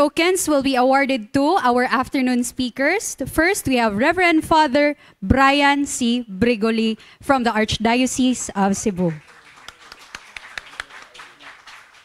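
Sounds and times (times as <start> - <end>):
people clapping: 8.9 - 12.0.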